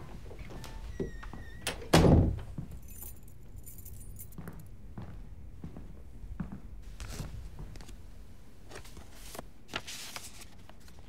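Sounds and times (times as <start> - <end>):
door closing with heavy thud: 0.4 - 2.6
light metallic jingle: 2.7 - 4.7.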